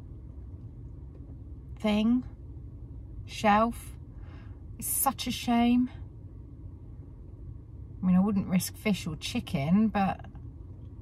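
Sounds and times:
low rumble inside car cabin: 0:00.0 - 0:11.0.

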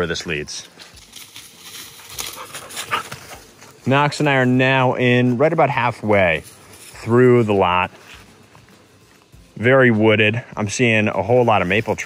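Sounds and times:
man speaking: 0:00.0 - 0:00.8, 0:03.8 - 0:08.1, 0:09.6 - 0:12.0
footsteps crunching dry leaves: 0:00.2 - 0:12.0.

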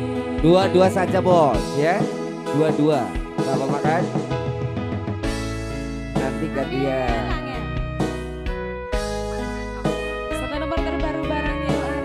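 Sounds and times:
steady bass line: 0:03.9 - 0:12.0.

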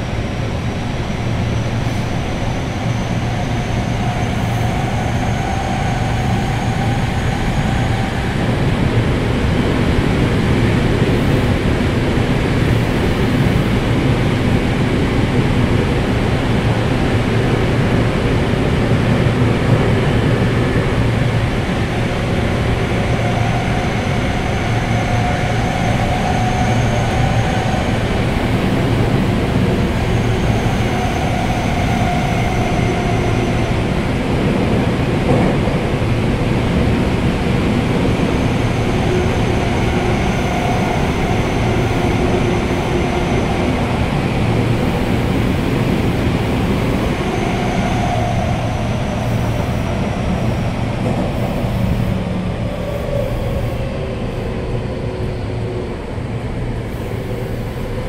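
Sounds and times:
train wheels rumbling: 0:00.0 - 0:58.0.

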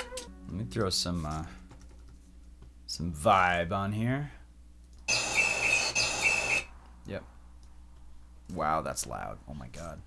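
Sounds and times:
loud noise with high whistling tone: 0:05.1 - 0:06.7.

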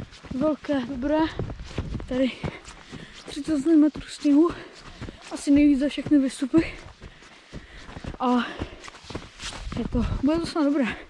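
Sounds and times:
boots walking through snow: 0:00.0 - 0:11.0.

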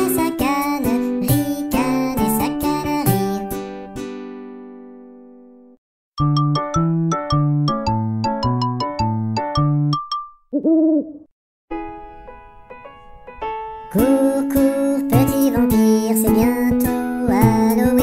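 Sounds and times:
children's song: 0:00.0 - 0:03.7, 0:13.9 - 0:18.0
music: 0:00.0 - 0:10.2, 0:11.7 - 0:18.0
keyboard jingle: 0:06.2 - 0:10.5
cartoon owl hoot: 0:10.5 - 0:11.3.

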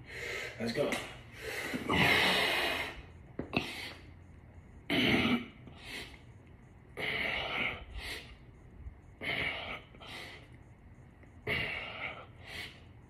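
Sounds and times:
man huffing breaths: 0:01.3 - 0:04.2, 0:09.1 - 0:10.6, 0:11.3 - 0:13.0.

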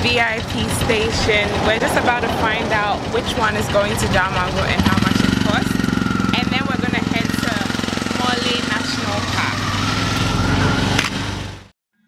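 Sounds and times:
people talking: 0:00.0 - 0:09.6
small engine idling: 0:00.0 - 0:11.7.

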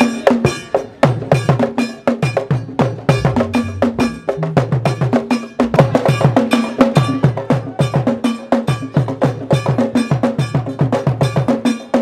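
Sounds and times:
ringing bell: 0:00.0 - 0:11.8
drums struck quickly: 0:00.0 - 0:12.0.

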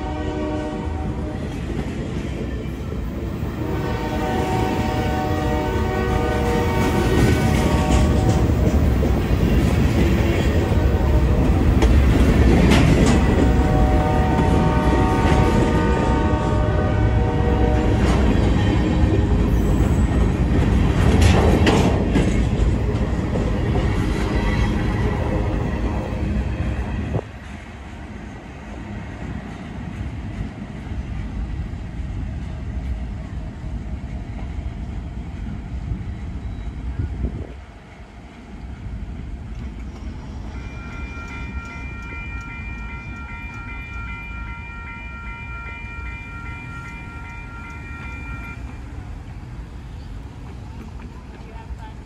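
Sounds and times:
distant train air horn: 0:00.0 - 0:01.6, 0:03.6 - 0:08.6, 0:13.0 - 0:18.2, 0:40.5 - 0:48.8
freight train rolling past: 0:00.0 - 0:52.0.

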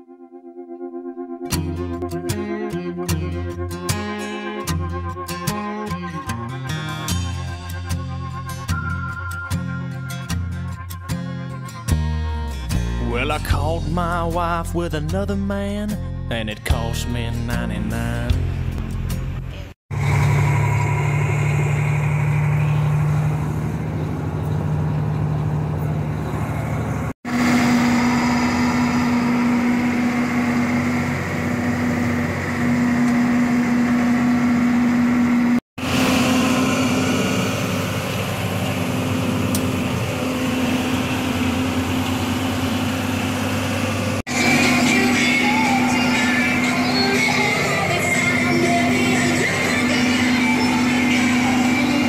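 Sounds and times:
diesel engine drone: 0:00.0 - 0:52.0
steady whine: 0:19.9 - 0:52.0.

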